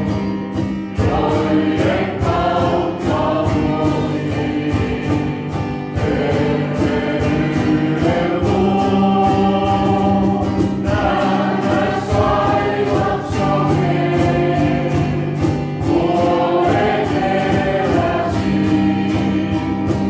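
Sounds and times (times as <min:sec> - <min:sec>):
choir singing gospel song: 0:00.7 - 0:20.0.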